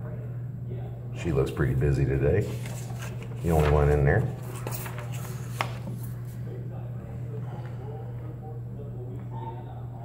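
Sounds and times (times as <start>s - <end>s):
low room hum: 0.0s - 10.0s
faint rustling: 2.4s - 6.5s.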